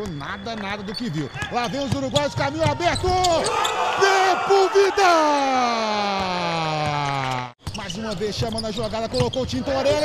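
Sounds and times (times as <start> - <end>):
commentator long shout: 3.8 - 6.7.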